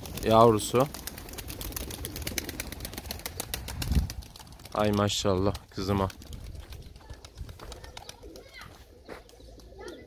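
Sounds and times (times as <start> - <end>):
pigeon calls: 0.0 - 4.5, 5.8 - 10.0.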